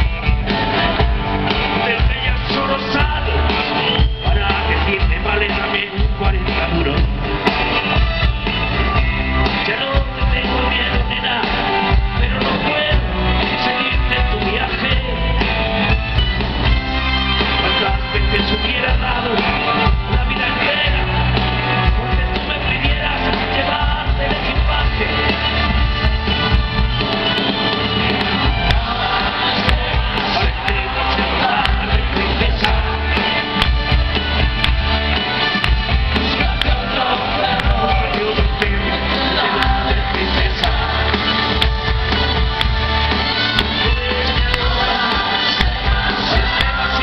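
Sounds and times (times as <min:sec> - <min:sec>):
man singing: 0:00.0 - 0:07.4, 0:09.4 - 0:15.5, 0:17.4 - 0:25.6, 0:28.6 - 0:34.5, 0:36.1 - 0:41.8, 0:43.4 - 0:47.0
live rock band playing: 0:00.0 - 0:47.0.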